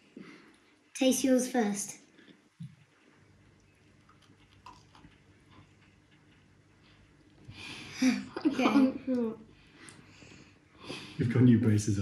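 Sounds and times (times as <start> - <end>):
crunchy chewing: 2.9 - 7.5.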